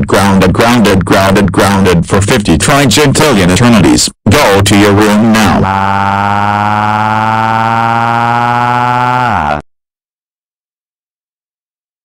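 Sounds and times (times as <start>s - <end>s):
man shouting angrily: 4.3s - 9.6s.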